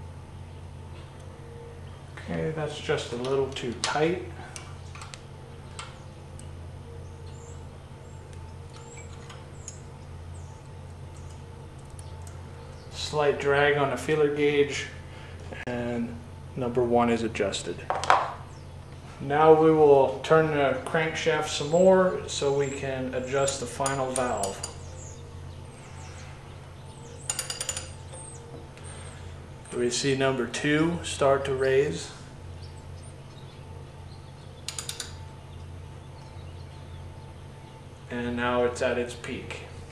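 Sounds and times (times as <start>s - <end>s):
steady low hum: 0.0s - 39.9s
wrench metallic clicks: 23.4s - 24.8s, 27.3s - 28.0s, 34.7s - 35.2s
ratchet wrench clicking: 34.7s - 35.2s.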